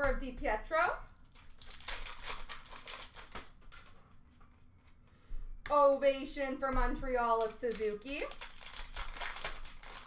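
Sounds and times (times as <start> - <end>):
trading cards rustling: 1.2 - 4.3, 7.3 - 10.0.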